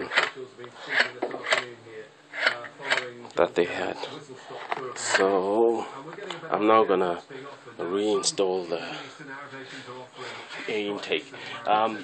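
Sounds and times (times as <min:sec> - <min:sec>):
television news speech: 0:00.0 - 0:12.0.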